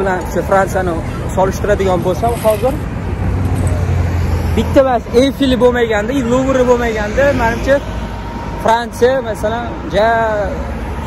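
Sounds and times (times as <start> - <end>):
man talking: 0.0 - 2.9, 4.5 - 10.8
road traffic rumble: 0.0 - 11.0.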